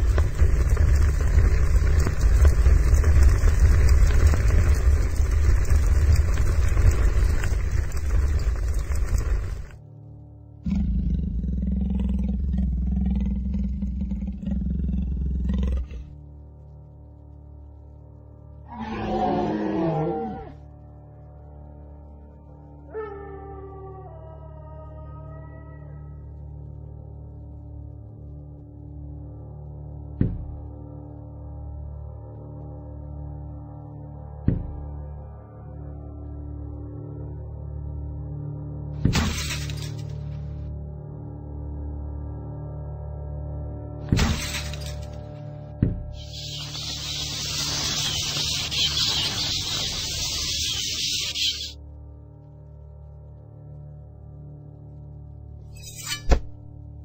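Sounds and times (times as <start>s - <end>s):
big cat roaring: 10.6s - 16.1s, 18.7s - 20.6s
sustained background music: 15.5s - 57.0s
shattering crash: 39.0s - 40.2s, 44.1s - 45.2s.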